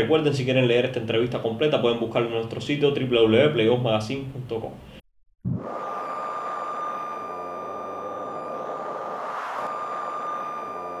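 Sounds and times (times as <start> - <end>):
high steady electronic tone: 5.4 - 11.0.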